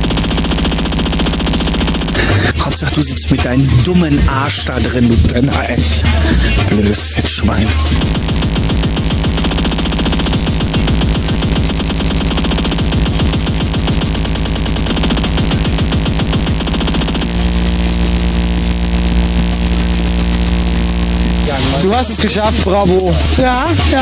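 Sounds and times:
electronic tones: 0:00.0 - 0:24.0
fast distorted kick drums: 0:00.0 - 0:24.0
held distorted bass tone: 0:00.0 - 0:24.0.

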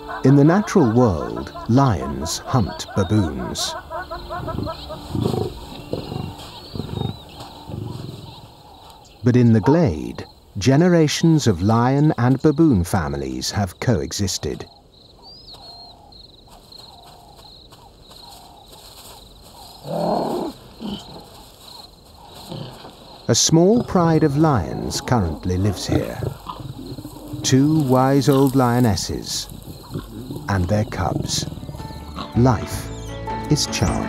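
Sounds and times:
faint bird chirps: 0:00.6 - 0:12.8, 0:13.7 - 0:32.2
animal grunting: 0:03.0 - 0:10.0, 0:19.8 - 0:21.4, 0:22.3 - 0:32.7
lions roaring: 0:04.4 - 0:08.9, 0:23.6 - 0:32.4
faint high bird chirps: 0:14.6 - 0:23.3.

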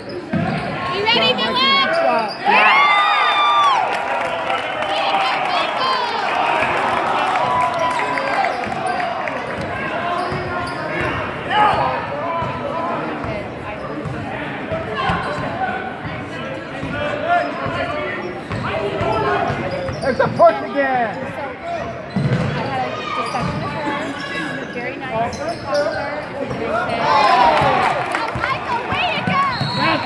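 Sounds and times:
echoing shouts and chatter: 0:00.0 - 0:30.0.

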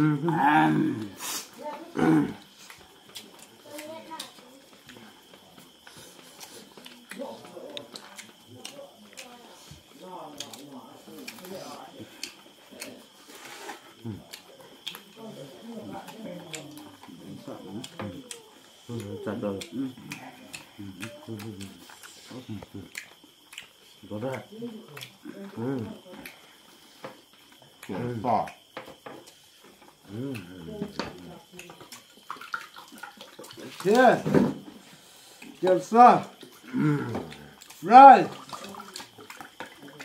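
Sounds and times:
men talking and murmuring: 0:00.0 - 0:03.6
people eating with hands: 0:00.0 - 0:40.0.

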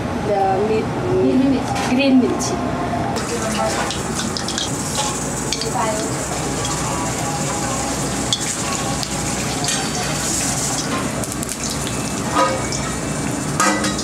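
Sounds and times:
hot oil sizzling: 0:03.2 - 0:14.0.

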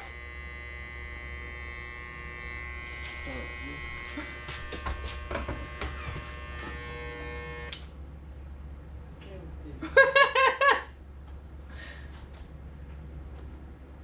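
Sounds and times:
electric hair clippers buzzing: 0:00.0 - 0:07.9.

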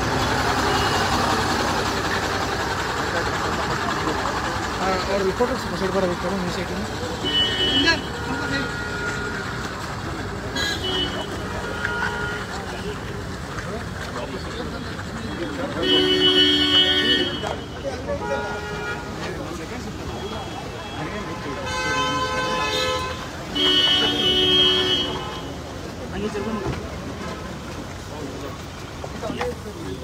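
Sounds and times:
crowd voices: 0:00.0 - 0:30.0
traffic noise: 0:00.0 - 0:30.0
car horns honking: 0:00.1 - 0:02.0, 0:07.0 - 0:13.1, 0:15.3 - 0:25.8.

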